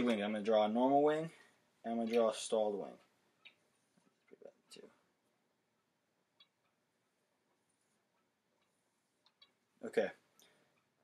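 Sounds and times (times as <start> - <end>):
marker ticking on whiteboard: 5.7 - 7.0.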